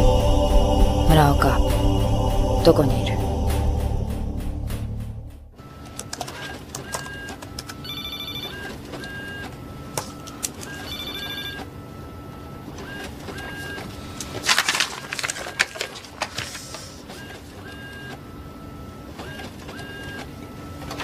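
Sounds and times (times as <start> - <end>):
steady low hum: 0.0 - 6.2.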